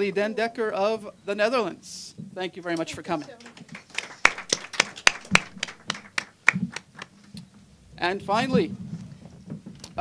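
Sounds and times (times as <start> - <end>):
hand clapping: 2.6 - 7.4.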